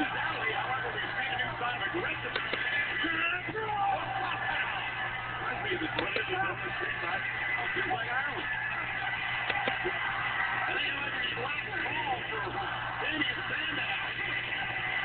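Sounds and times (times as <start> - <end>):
arena crowd noise: 0.0 - 15.0
voices: 0.0 - 15.0.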